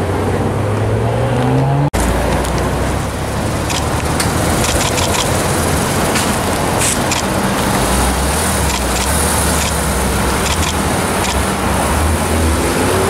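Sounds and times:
road traffic noise: 0.0s - 13.0s
car engine accelerating: 0.5s - 13.0s.

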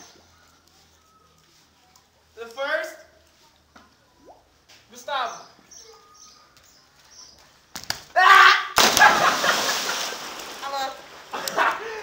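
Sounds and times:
person yelling: 8.2s - 8.8s
body slapping onto water: 8.8s - 11.7s.

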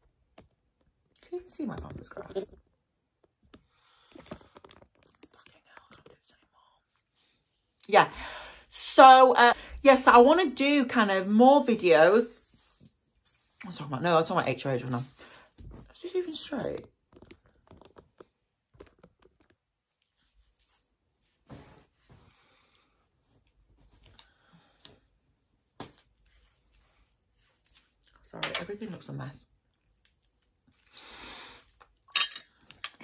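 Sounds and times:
soft whisper-like sounds: 3.6s - 7.8s.

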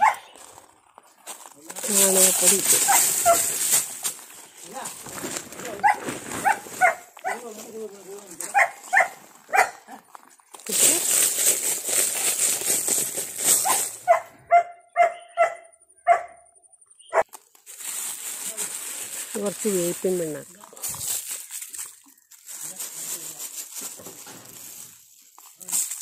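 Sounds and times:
dog barking: 0.0s - 0.3s, 5.8s - 7.4s, 8.5s - 9.9s, 13.6s - 16.5s.

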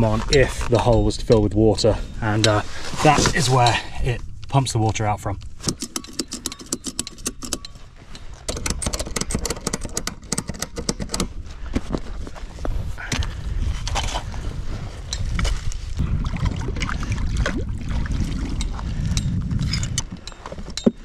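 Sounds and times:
knocks and scrapes of stones: 0.0s - 3.9s, 5.6s - 16.0s
ratchet strap clicking: 5.6s - 7.8s, 8.4s - 11.3s
water sloshing: 16.1s - 18.9s.

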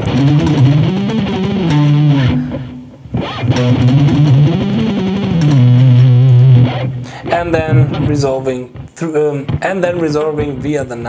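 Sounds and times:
electric guitar lead run: 0.0s - 8.1s.

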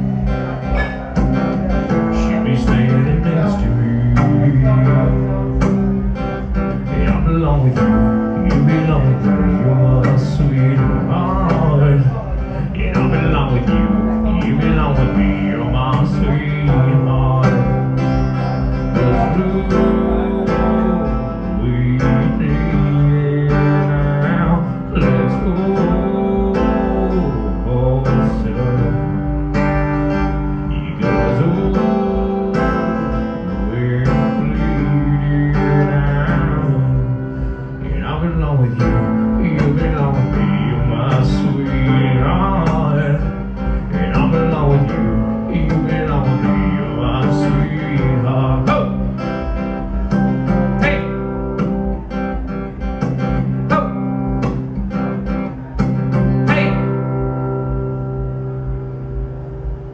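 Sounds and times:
man singing: 0.0s - 52.0s, 52.7s - 58.1s
acoustic guitar strummed: 0.0s - 59.9s.

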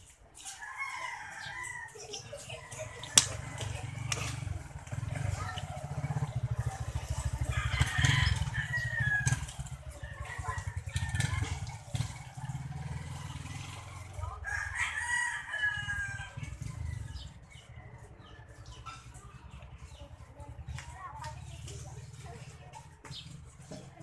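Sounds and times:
rooster crowing: 0.6s - 2.2s, 7.4s - 9.5s, 14.4s - 16.6s.

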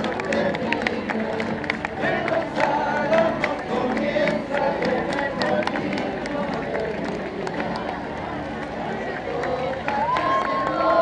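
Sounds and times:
crowd voices talking and calling: 0.0s - 11.0s.

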